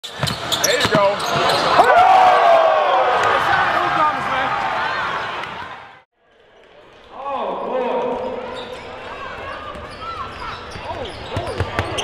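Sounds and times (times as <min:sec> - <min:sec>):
basketballs bouncing on court: 0:00.0 - 0:01.7, 0:08.7 - 0:12.0
players' voices: 0:00.6 - 0:05.9.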